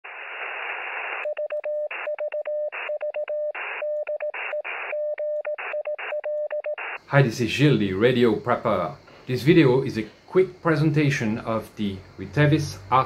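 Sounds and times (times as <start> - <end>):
radio static hiss: 0.0 - 1.3, 3.6 - 5.0, 5.6 - 13.0
morse code beeps: 1.2 - 7.0.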